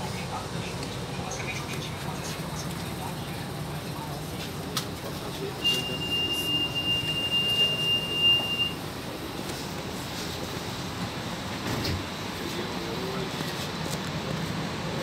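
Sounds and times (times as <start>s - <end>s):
train car low running hum: 0.0s - 15.0s
high warning beep: 5.6s - 8.8s.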